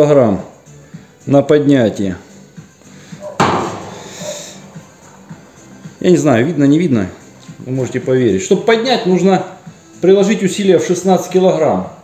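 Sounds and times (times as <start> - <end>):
steel hood clanking shut: 3.4 - 4.1.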